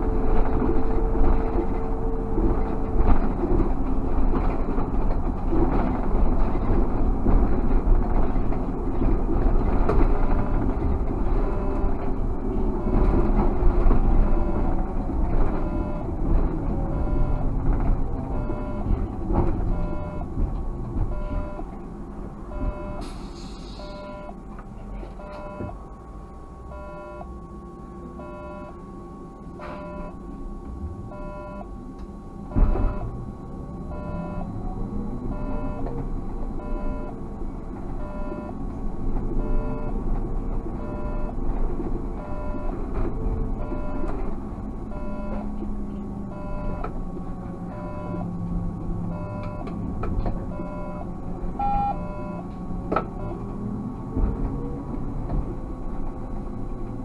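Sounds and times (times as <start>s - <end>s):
car engine and road noise: 0.0s - 57.0s
short electronic beeps: 19.7s - 20.3s, 22.5s - 23.2s, 23.8s - 24.4s, 25.2s - 25.8s, 31.1s - 31.7s, 33.9s - 34.6s, 50.5s - 52.4s.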